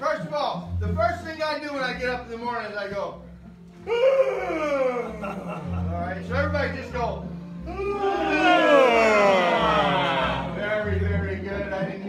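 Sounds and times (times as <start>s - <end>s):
piano accompaniment: 0.0s - 12.0s
man singing a hymn: 10.5s - 12.0s.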